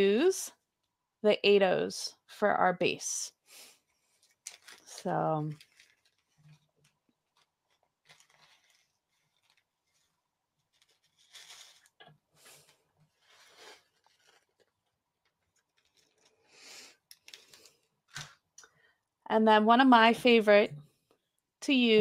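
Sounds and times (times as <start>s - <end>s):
plastic bag crinkling: 4.2s - 17.8s.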